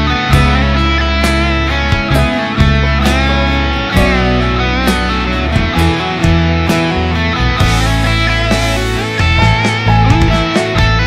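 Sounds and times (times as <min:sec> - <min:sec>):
bass and drums: 0:00.0 - 0:11.0
electric guitar lead with bends: 0:00.0 - 0:11.0.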